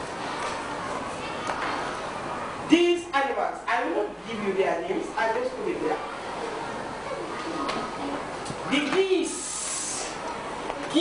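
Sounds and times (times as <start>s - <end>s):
person saying hissing syllables: 9.3s - 10.2s.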